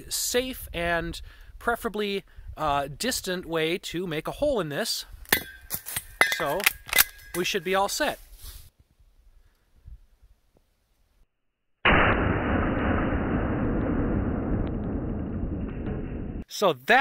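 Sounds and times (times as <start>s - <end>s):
rifle shot: 11.8s - 16.4s.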